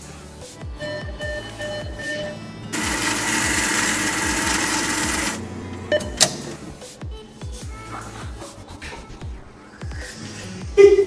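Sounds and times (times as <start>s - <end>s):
cash dispenser whirring: 2.7s - 6.8s.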